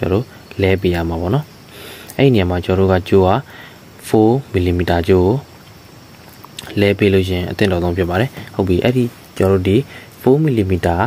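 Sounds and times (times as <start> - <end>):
man speaking: 0.0 - 5.6, 6.5 - 11.0.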